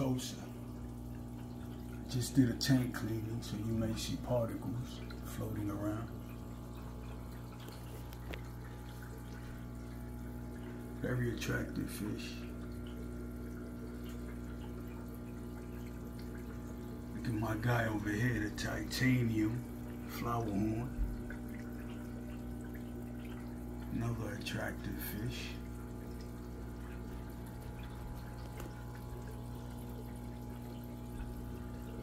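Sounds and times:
aquarium filter bubbling and trickling: 0.0s - 32.0s
steady low hum: 0.0s - 32.0s
water drips: 0.0s - 32.0s.

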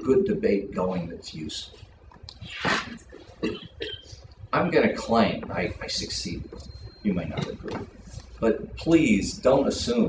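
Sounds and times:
person coughing: 2.6s - 4.2s.

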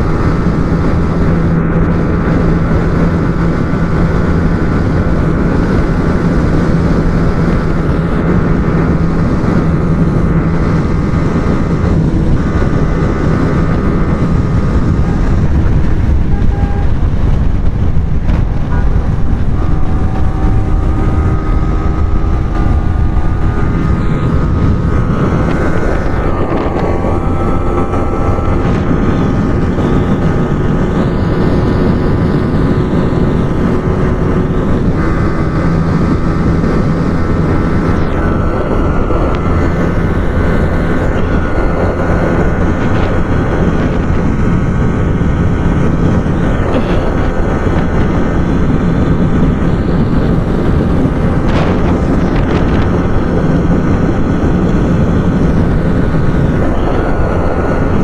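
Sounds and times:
motorcycle engine at high revs: 0.0s - 58.0s
wind noise on microphone: 0.0s - 58.0s.

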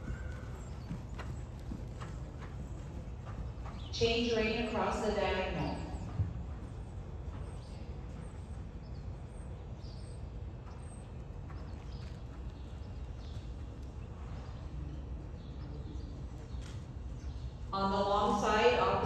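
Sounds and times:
horse hoofbeats on sand: 0.0s - 19.0s.

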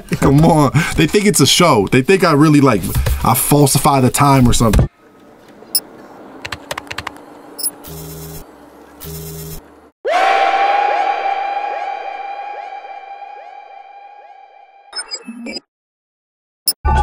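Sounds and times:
computer keyboard keys clicking: 6.4s - 7.7s.

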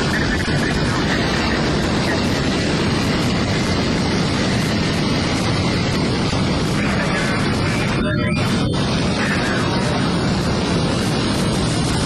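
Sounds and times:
jet engine roaring: 0.0s - 12.0s.

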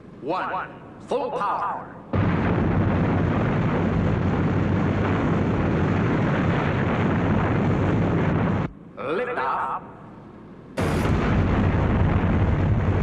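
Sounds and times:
rocket engine roar: 2.1s - 8.7s, 10.8s - 13.0s.

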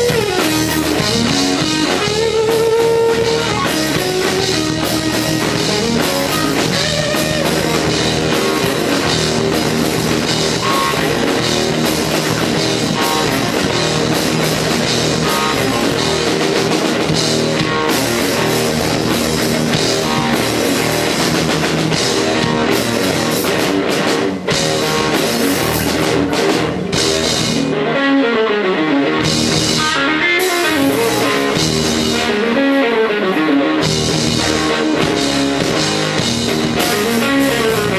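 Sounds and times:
drum kit: 0.0s - 28.1s, 29.0s - 37.9s
bass: 0.0s - 37.9s
electric guitar: 0.0s - 37.9s.

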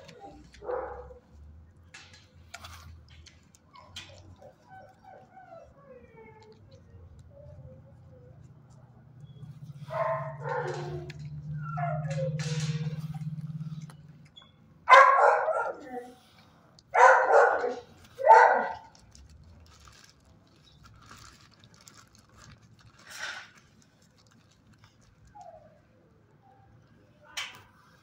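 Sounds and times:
dogs barking and yipping: 0.0s - 1.4s, 3.2s - 14.3s, 14.9s - 18.9s.

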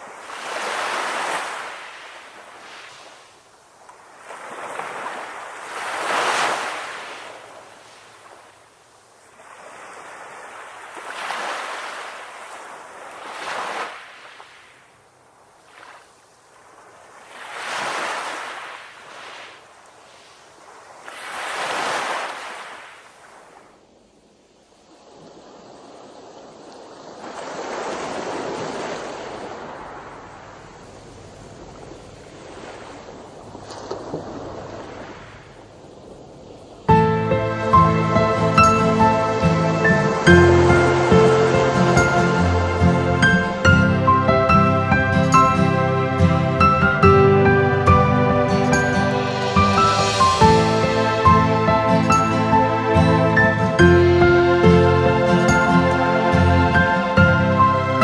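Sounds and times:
small waves breaking on shore: 0.0s - 58.0s.

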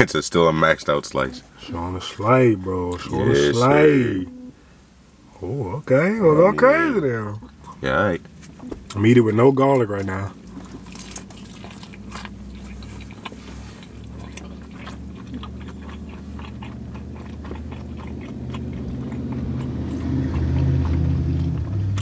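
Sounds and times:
chewing food: 7.4s - 22.0s.

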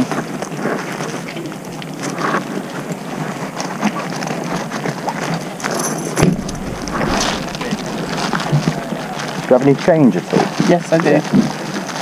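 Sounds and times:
rustling: 5.6s - 9.9s
loud thump: 5.8s - 10.0s.

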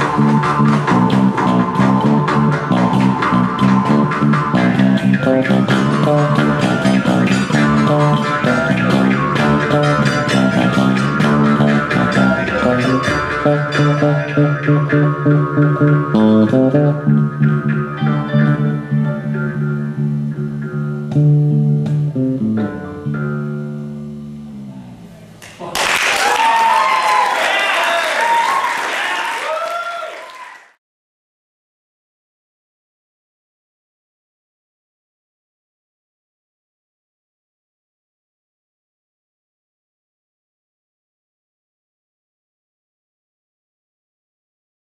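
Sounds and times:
jaw harp twanging drone: 0.0s - 22.2s
bass: 0.0s - 27.2s
audience applause and cheering: 25.4s - 30.8s.

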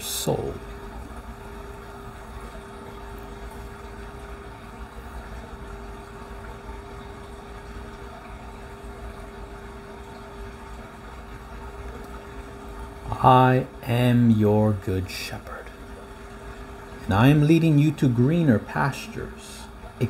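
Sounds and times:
mid-pitched hum: 0.0s - 20.0s.

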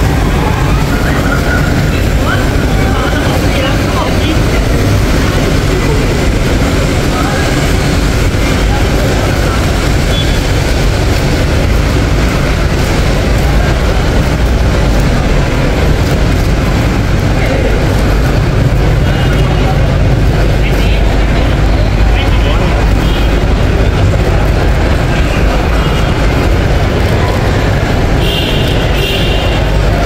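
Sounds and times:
indistinct voices: 0.0s - 30.0s.

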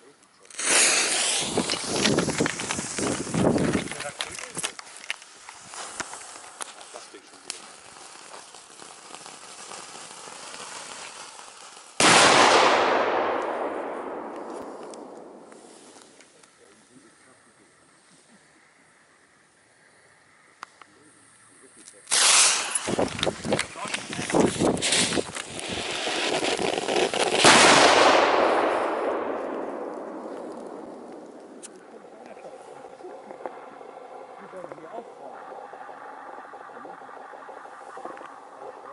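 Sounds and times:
firework fizzing crackle: 0.4s - 16.9s, 21.9s - 38.9s
firework loud burst: 0.5s - 4.3s, 5.6s - 16.2s, 22.1s - 35.0s.

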